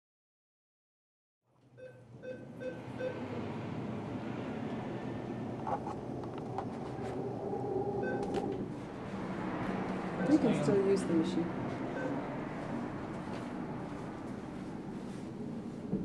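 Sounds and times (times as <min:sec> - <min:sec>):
short beeps: 0:08.0 - 0:08.3.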